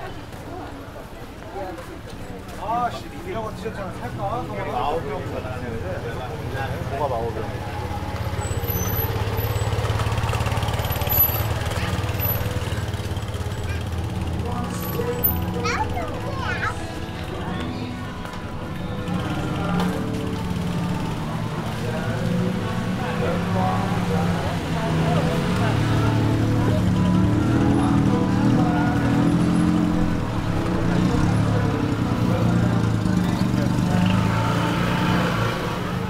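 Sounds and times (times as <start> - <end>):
crowd chatter: 0.0 - 36.0
street music: 0.0 - 36.0
vehicle engine running: 5.3 - 36.0.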